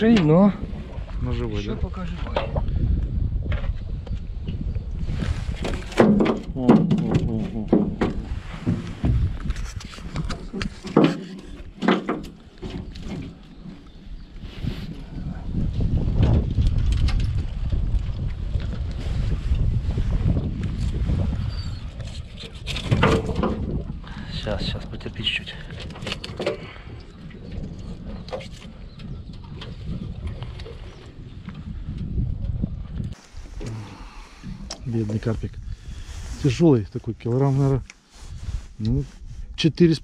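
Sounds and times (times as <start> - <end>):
wind rumble on microphone: 0.0 - 40.0
knocks in metal boat: 5.9 - 9.3.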